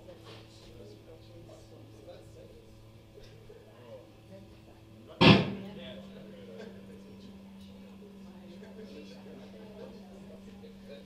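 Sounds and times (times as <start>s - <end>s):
steady low hum: 0.0s - 11.0s
loud sharp hit: 5.2s - 5.7s.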